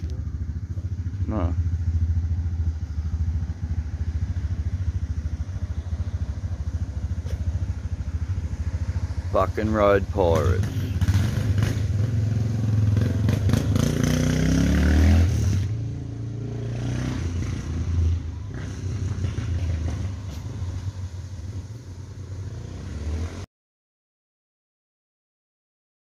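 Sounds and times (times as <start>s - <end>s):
motorcycle engine accelerating: 0.0s - 23.5s.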